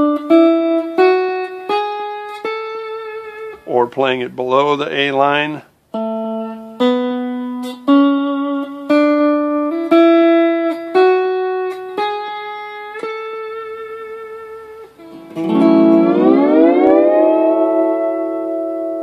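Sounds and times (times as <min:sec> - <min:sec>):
lap steel guitar notes: 0:00.0 - 0:03.7, 0:05.9 - 0:19.0
sliding guitar chord: 0:13.6 - 0:19.0.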